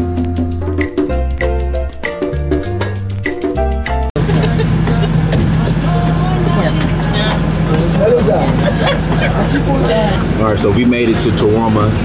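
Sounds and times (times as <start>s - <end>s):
minibus engine drone: 4.2s - 12.0s
people talking: 4.2s - 12.0s
road noise: 4.2s - 12.0s.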